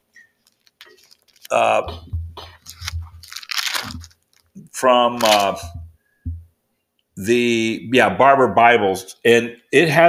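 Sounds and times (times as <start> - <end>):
rustling crinkling handling noise: 0.0 - 5.8.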